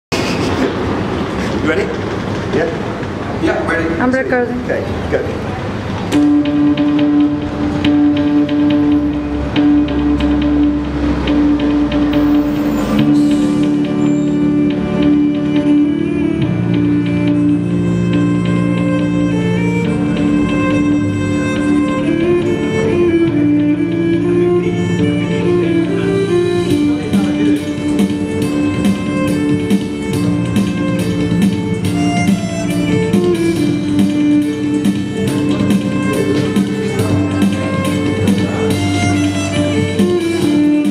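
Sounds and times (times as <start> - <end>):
electric violin melody: 3.4 - 40.9
sharp clicking beat: 6.1 - 40.9
pulsing held synth note: 6.2 - 18.8
deep bass: 6.2 - 40.9.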